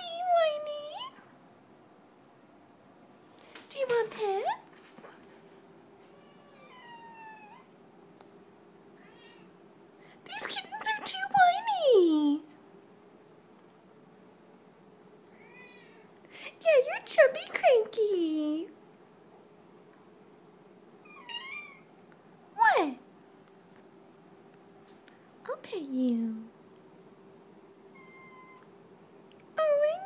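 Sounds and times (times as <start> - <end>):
cat meowing: 6.1 - 7.7, 9.0 - 9.5, 15.3 - 16.1, 21.0 - 21.9, 27.9 - 28.7.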